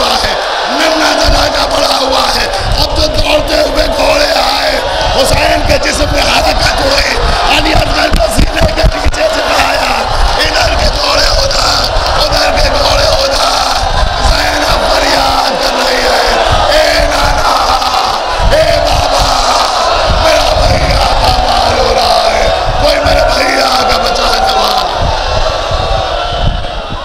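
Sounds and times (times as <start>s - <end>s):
crowd wailing and weeping: 0.0s - 27.0s.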